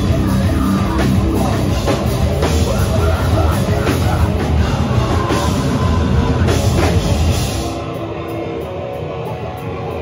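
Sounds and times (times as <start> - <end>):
distorted guitars: 0.0 - 10.0
hardcore band playing live: 0.0 - 10.0
pounding drums and cymbals: 0.0 - 10.0.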